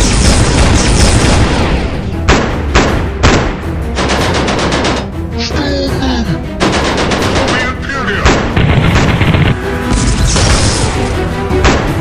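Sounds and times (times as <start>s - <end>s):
rapid gunfire bursts: 0.0s - 1.7s, 2.3s - 5.1s, 6.6s - 9.6s
dramatic music score: 0.0s - 12.0s.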